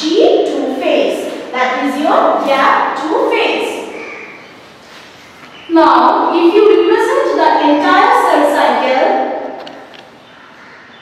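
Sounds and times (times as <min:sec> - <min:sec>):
woman speaking: 0:00.0 - 0:04.0, 0:05.7 - 0:09.4.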